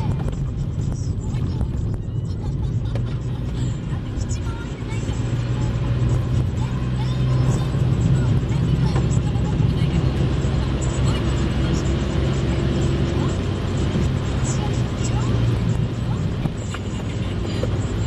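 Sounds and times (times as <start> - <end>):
car engine drone: 0.0 - 18.0
tyres on wet slushy road: 0.0 - 18.0.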